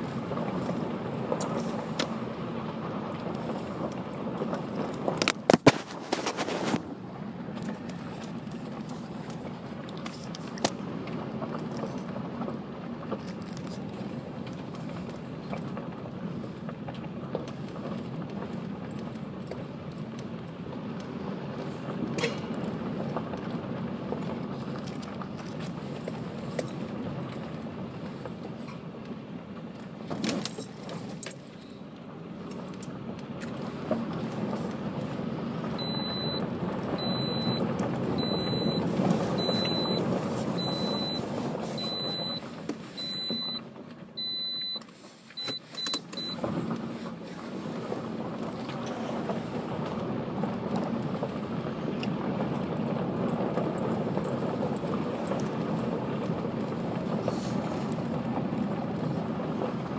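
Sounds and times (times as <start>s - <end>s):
tyres crunching over gravel: 0.0s - 59.9s
short high electronic beeps: 39.4s - 40.0s.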